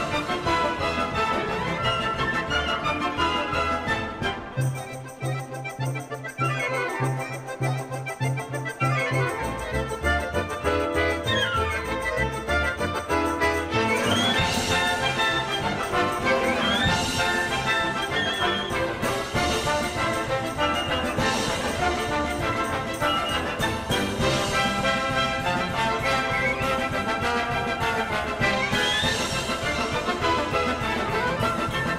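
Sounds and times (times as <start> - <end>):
folk dance music with accordion and brass: 0.0 - 31.9.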